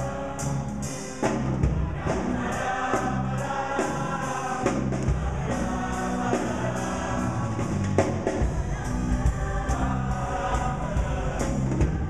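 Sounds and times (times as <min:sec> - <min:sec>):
choir singing in harmony: 0:00.0 - 0:12.0
drum kit with cymbal strokes: 0:00.0 - 0:12.0
pop band playing: 0:00.0 - 0:12.0.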